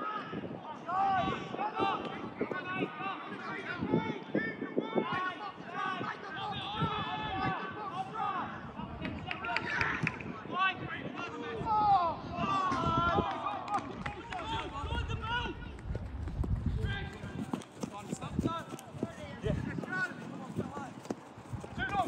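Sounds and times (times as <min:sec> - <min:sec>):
running footsteps on grass: 0:15.7 - 0:22.0.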